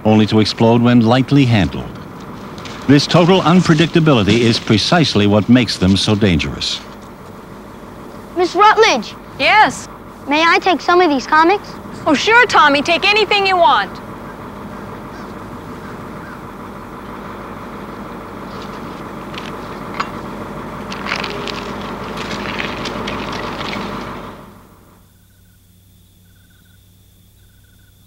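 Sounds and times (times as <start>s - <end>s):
truck engine running: 0.0s - 28.0s.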